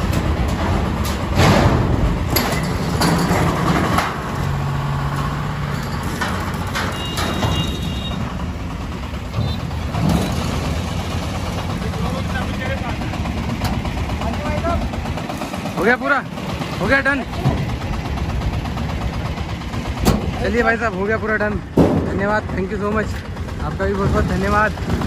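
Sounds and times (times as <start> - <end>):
three-wheeler engine running: 0.0 - 25.0.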